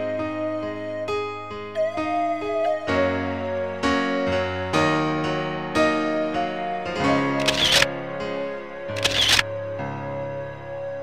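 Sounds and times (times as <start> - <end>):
keyboard music: 0.0 - 11.0.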